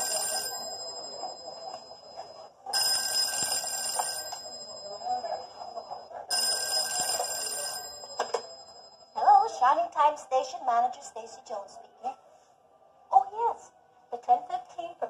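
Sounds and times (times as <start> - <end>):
telephone bell ringing: 0.0 - 9.3.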